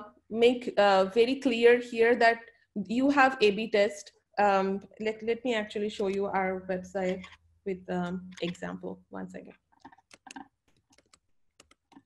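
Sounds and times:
computer keys clicking: 9.8s - 12.0s.

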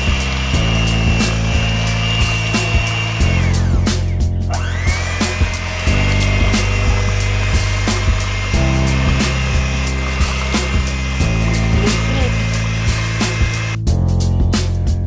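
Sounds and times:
electric hand mixer whining: 0.0s - 13.8s
background music with chords: 0.0s - 15.0s.

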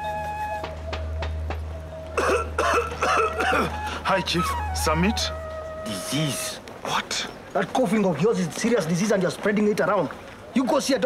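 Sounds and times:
man coughing: 2.2s - 3.8s.

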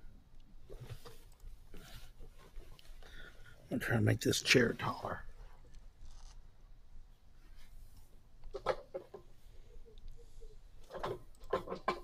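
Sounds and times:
person speaking softly: 3.7s - 5.3s.

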